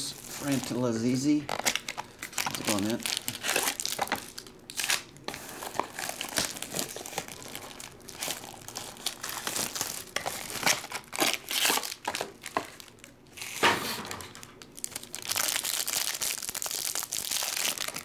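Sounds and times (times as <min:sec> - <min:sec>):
plastic wrapping crinkling: 0:00.0 - 0:18.0.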